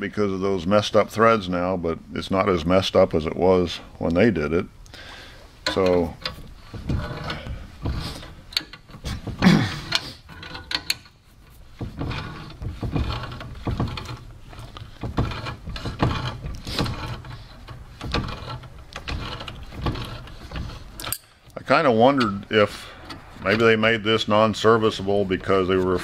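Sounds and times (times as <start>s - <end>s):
wrench clicking and scraping on nut: 5.6s - 21.6s.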